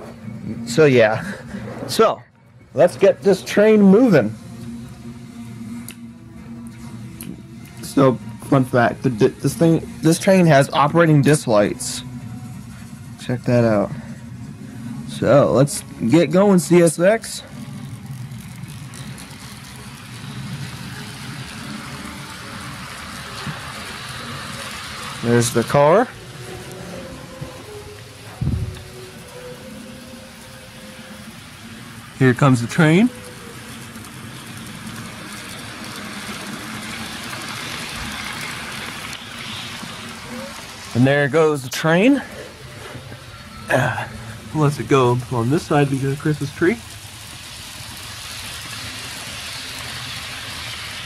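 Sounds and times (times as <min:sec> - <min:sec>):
model train motor hum: 0:16.7 - 0:51.0.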